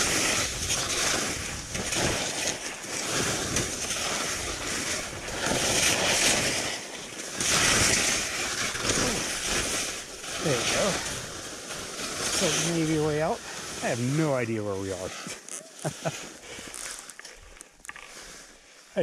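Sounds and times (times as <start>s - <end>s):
wind on microphone: 0.0s - 2.4s
skis scraping over snow: 0.0s - 19.0s.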